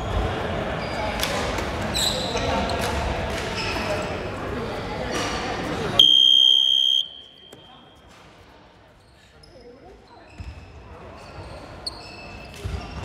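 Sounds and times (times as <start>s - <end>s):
gym buzzer: 6.0s - 7.2s.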